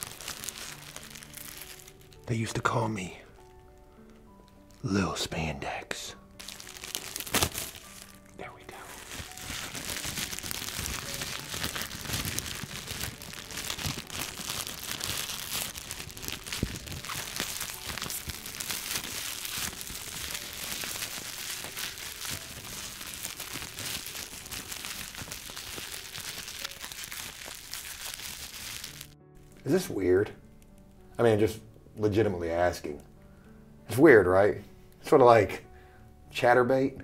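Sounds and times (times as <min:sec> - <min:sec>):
plastic wrapping crinkling: 0:00.0 - 0:02.8, 0:06.3 - 0:29.2.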